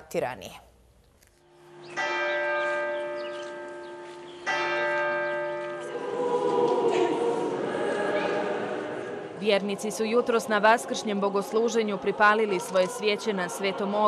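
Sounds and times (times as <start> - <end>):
large church bell ringing: 1.5 - 9.4
choir singing: 5.6 - 14.0.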